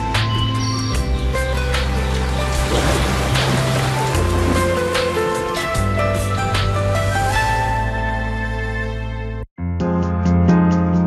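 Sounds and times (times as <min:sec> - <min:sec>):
synth theme music with low bass: 0:00.0 - 0:11.0.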